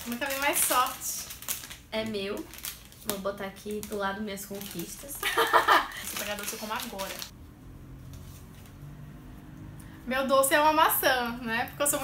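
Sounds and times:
woman's voice: 0.0s - 1.3s, 1.9s - 7.3s, 10.0s - 12.0s
plastic bag crinkling: 0.0s - 7.3s.

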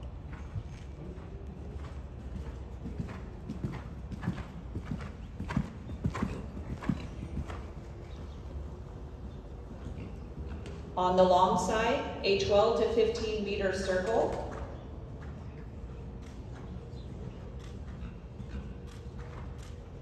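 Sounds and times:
horse hoofbeats on sand: 0.0s - 8.4s, 13.9s - 20.0s.

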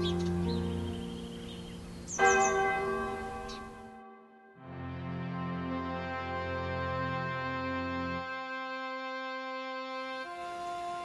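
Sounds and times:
church bell tolling: 0.0s - 1.4s, 2.1s - 7.0s.

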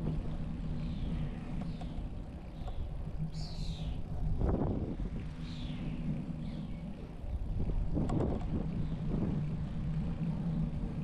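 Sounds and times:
bicycle tyres rolling on asphalt: 0.0s - 11.0s
wind on microphone: 4.0s - 10.1s.

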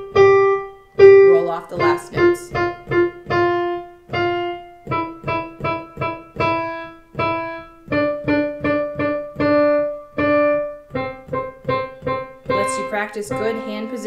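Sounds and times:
digital piano exercise: 0.0s - 14.0s.

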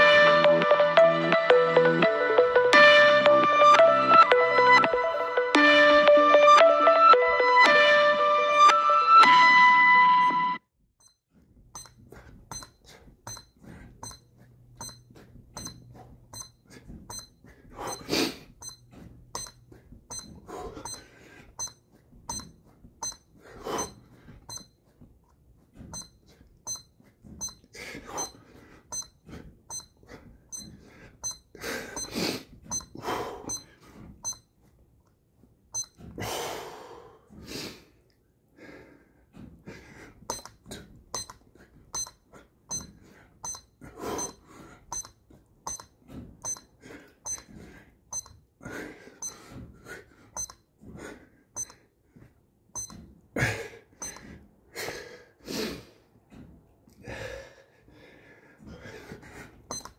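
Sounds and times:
short high beeps: 11.8s - 14.2s, 14.8s - 15.8s, 16.4s - 17.3s, 17.9s - 18.8s, 19.4s - 21.0s, 21.6s - 23.2s, 23.8s - 24.7s, 26.0s - 27.6s, 28.2s - 32.1s, 32.7s - 34.4s, 35.8s - 36.0s, 41.2s - 41.4s, 42.0s - 45.1s, 45.7s - 46.7s, 47.3s - 47.5s, 50.4s - 50.6s, 52.8s - 53.0s
hard exhaled breaths: 27.7s - 34.1s, 36.2s - 40.9s, 57.0s - 59.7s.

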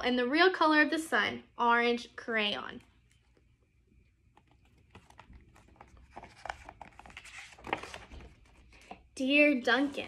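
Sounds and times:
book pages turning: 4.2s - 9.2s.

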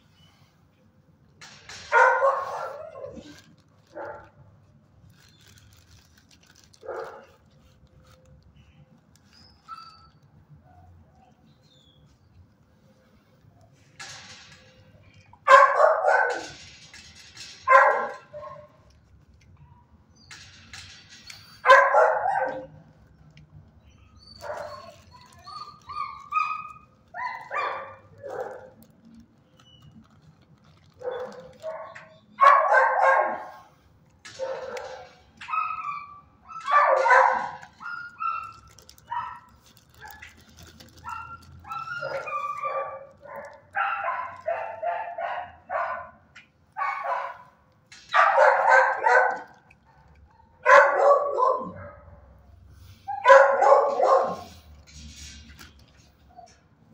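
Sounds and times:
dogs barking: 1.8s - 4.4s, 6.6s - 7.4s, 15.3s - 16.8s, 17.6s - 18.8s, 21.6s - 22.8s, 24.3s - 28.9s, 30.9s - 52.4s, 53.1s - 54.8s
high dog yips: 1.9s - 4.3s, 15.4s - 16.6s, 17.6s - 18.8s, 21.6s - 22.8s, 24.2s - 28.7s, 31.0s - 33.6s, 34.4s - 40.4s, 41.0s - 46.2s, 46.8s - 47.5s, 48.1s - 52.0s, 53.0s - 54.7s.

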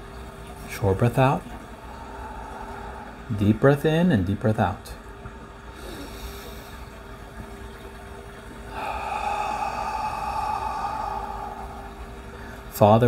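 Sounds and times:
man breathing in and out: 1.8s - 3.3s, 5.7s - 7.0s, 8.6s - 12.7s.

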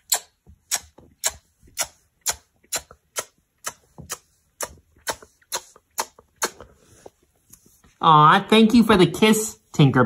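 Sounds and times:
sharp smacking clicks: 0.0s - 6.6s.

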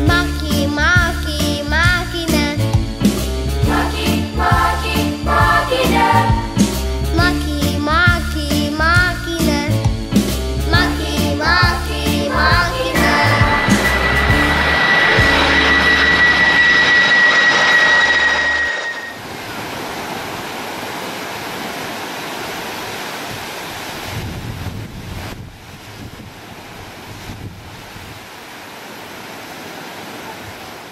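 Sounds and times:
jet airliner passing over: 12.3s - 19.6s
sea waves breaking on shore: 13.1s - 30.9s.

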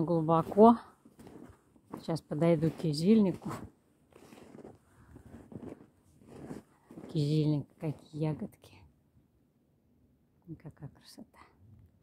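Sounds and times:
footsteps crunching in snow: 0.0s - 7.7s.

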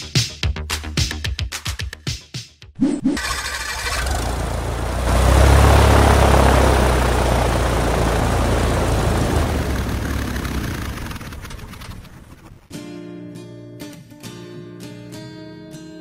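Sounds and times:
propeller aircraft engine drone: 3.2s - 12.7s
propeller whirring: 3.2s - 12.7s.

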